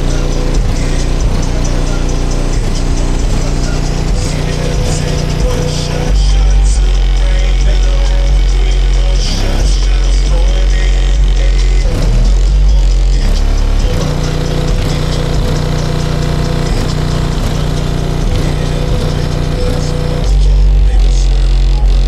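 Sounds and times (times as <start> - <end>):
loud electronic music with bass: 0.0 - 22.0.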